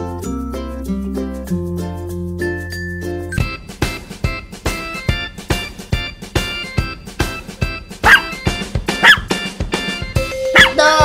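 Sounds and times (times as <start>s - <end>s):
upbeat children's music: 0.0s - 11.0s
dog barking: 8.0s - 9.4s, 10.5s - 11.0s.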